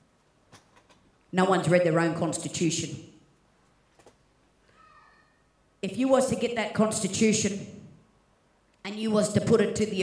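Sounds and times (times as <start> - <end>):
faint high-pitched call: 4.7 - 5.4.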